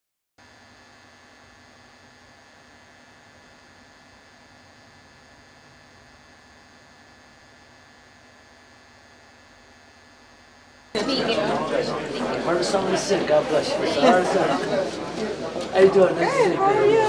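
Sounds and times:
electrical hum with hiss: 0:00.4 - 0:17.0.

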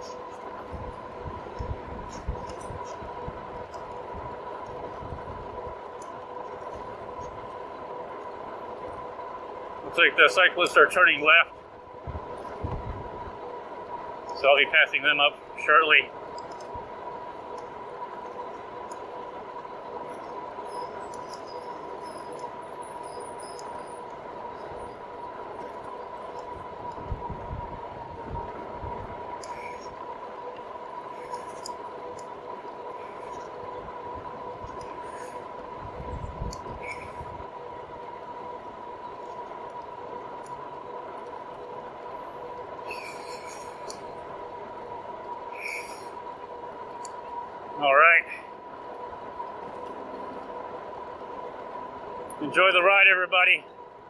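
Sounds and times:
high whine of bike drive: 0:00.0 - 0:54.0
road and wind noise: 0:00.0 - 0:54.0
wind rumble on microphone: 0:00.4 - 0:07.8, 0:12.0 - 0:14.2, 0:24.6 - 0:30.2, 0:33.2 - 0:38.3.

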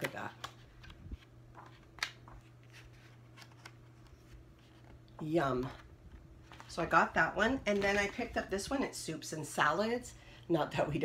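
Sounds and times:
book pages rustling and turning: 0:00.0 - 0:08.6.

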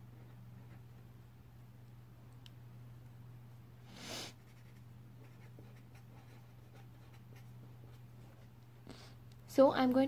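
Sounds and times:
pen writing on paper: 0:04.4 - 0:08.4.

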